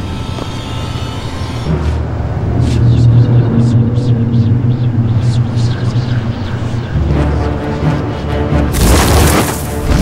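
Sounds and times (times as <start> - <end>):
low ominous drone: 0.0 - 8.8.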